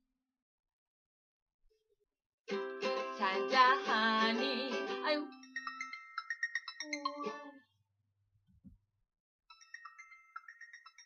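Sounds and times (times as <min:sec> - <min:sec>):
phone ringtone melody: 0:05.3 - 0:07.6, 0:09.5 - 0:11.0.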